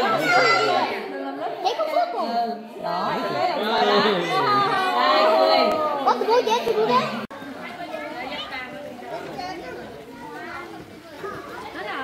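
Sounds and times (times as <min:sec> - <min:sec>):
chatter of adults and children: 0:00.0 - 0:12.0.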